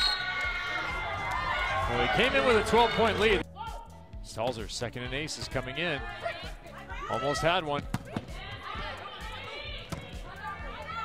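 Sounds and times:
crowd cheering and shouting: 0.0 - 3.9, 5.1 - 11.0
background music: 0.0 - 11.0.

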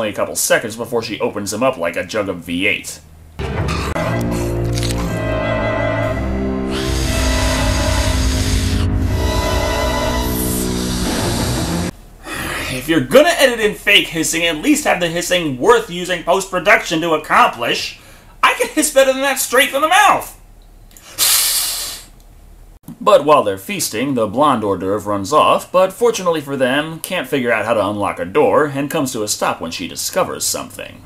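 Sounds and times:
horror film score: 3.4 - 11.9
long hiss: 21.0 - 22.2.

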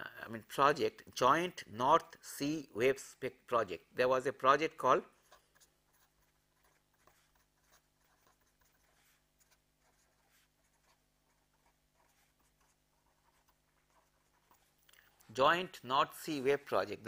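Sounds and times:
scratches of writing: 5.1 - 14.9.

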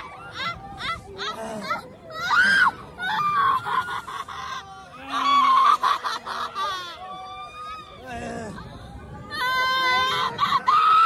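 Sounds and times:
riders screaming and shouting: 0.0 - 11.0.

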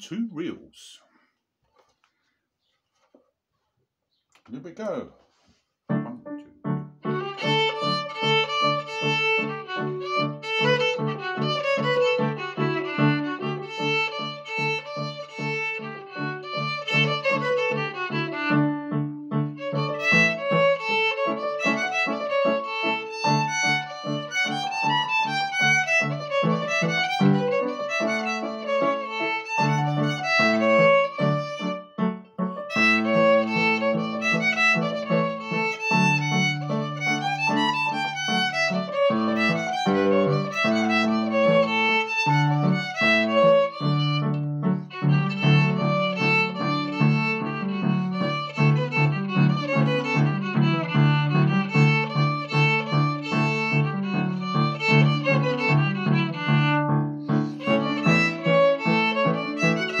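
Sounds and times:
solo fiddle playing reels: 7.0 - 18.8, 19.5 - 31.9, 32.6 - 60.0.

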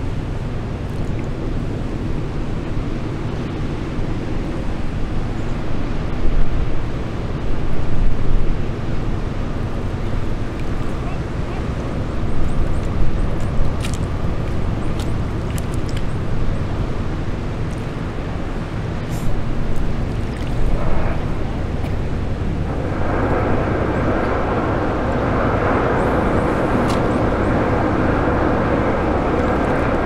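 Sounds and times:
ship engine rumble: 0.0 - 30.0
wind noise: 0.0 - 30.0.

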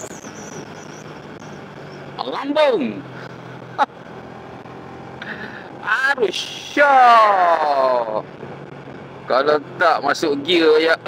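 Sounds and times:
motorcycle riding with wind noise: 0.0 - 11.0.

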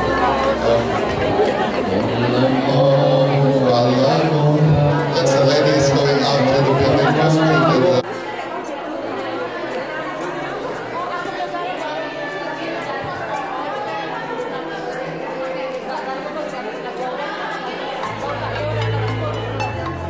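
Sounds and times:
chatter of many people: 0.0 - 20.0.

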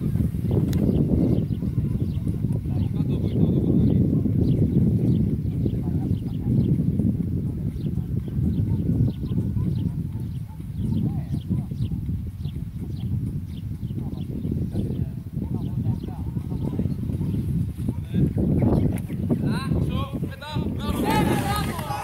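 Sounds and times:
faint distant voices: 0.0 - 22.0
wind rumble on microphone: 0.0 - 22.0.

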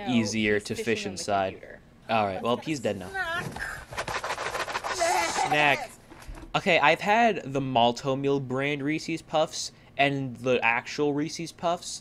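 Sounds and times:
plastic bag crinkling: 3.6 - 6.4
high-pitched vocal cry: 4.9 - 6.0.

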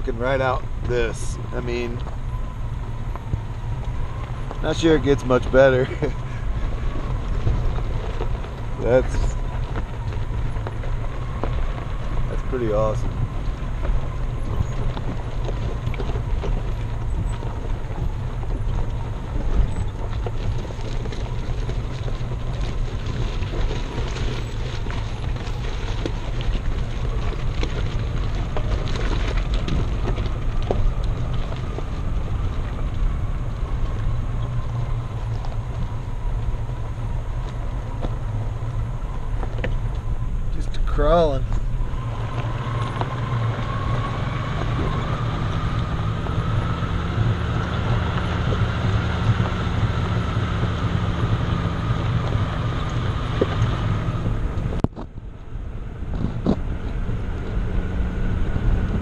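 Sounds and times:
engine and tyre rumble on gravel: 0.0 - 59.0.

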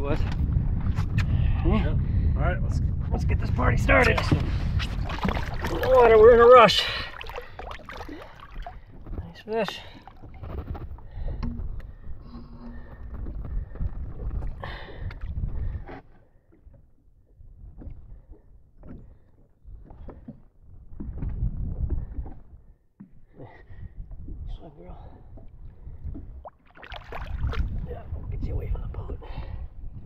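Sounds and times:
water splashing against boat: 3.8 - 29.0.

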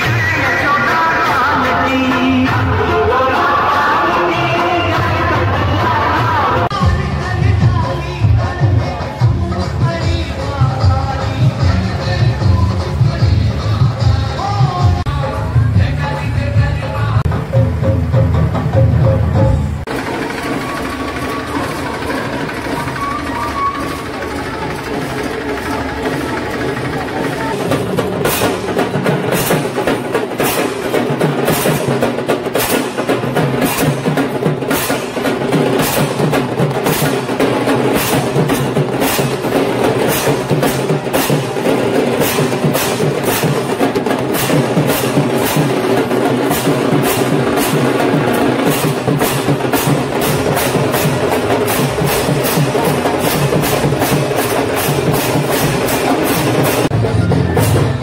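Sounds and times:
steady drumming: 0.0 - 58.0
voices of street crowd: 0.0 - 58.0
brass hand cymbals clashing: 27.8 - 56.9.

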